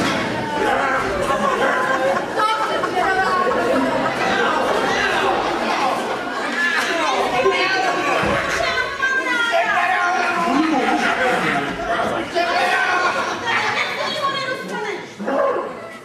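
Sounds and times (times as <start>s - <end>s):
voices shouting and talking: 0.0s - 16.0s.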